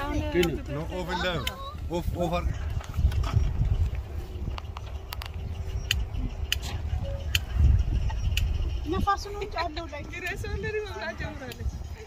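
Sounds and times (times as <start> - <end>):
wind rumble on microphone: 0.0 - 12.0
sharp clicks: 4.5 - 8.7.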